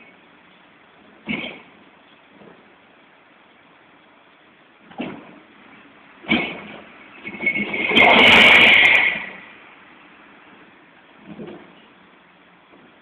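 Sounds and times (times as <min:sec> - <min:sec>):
sharp clatter: 0:04.9 - 0:09.6.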